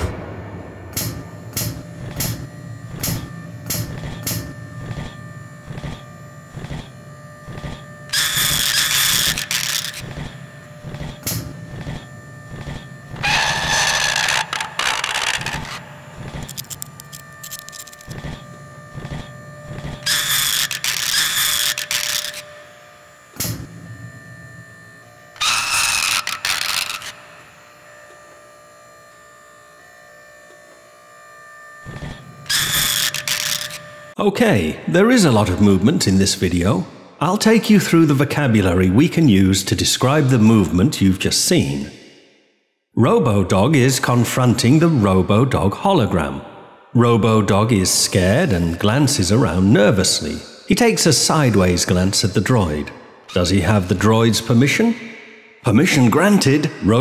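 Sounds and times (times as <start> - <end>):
mechanical clicks and whirs: 0.0 - 34.2
steady hum: 0.0 - 42.3
loud harsh bursts: 8.1 - 10.9, 13.0 - 16.3, 25.4 - 27.4.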